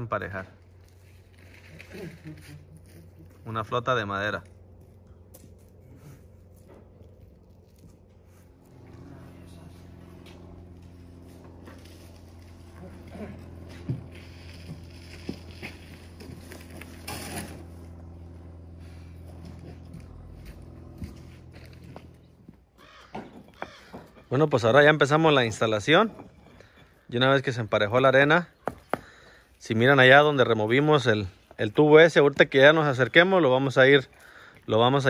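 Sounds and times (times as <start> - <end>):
low motor hum: 0.0 - 35.0
wooden float scraping sand: 11.3 - 18.2.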